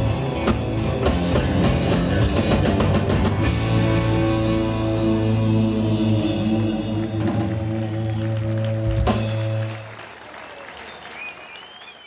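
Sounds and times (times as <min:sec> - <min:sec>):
surf rock band playing: 0:00.0 - 0:09.9
audience applauding: 0:06.7 - 0:12.0
rising whistle: 0:10.8 - 0:12.0.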